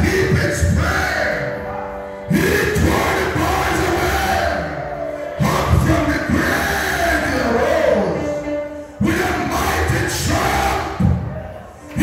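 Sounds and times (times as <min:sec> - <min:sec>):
congregation singing: 0:00.0 - 0:12.0
music through loudspeakers: 0:00.0 - 0:12.0
man singing into a microphone: 0:02.3 - 0:04.7, 0:05.3 - 0:08.4.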